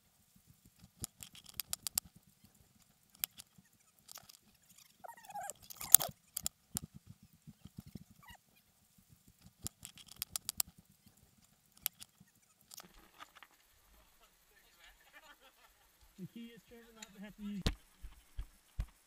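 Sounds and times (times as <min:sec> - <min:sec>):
footfalls on rough ground: 0:17.6 - 0:19.0.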